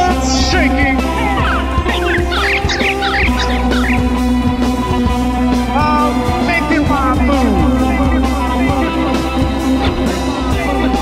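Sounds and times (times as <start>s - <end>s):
rock band playing: 0.0s - 11.0s
bird call squawks: 0.4s - 4.4s.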